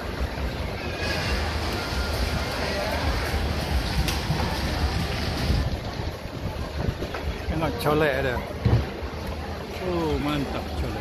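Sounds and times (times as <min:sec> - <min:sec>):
wind rumble on microphone: 0:00.0 - 0:09.2
crowded market murmur: 0:00.0 - 0:11.0.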